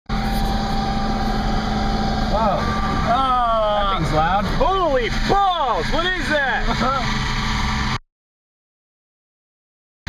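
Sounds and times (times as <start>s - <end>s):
car engine and road noise: 0.1s - 8.0s
thin steady whine: 0.1s - 8.0s.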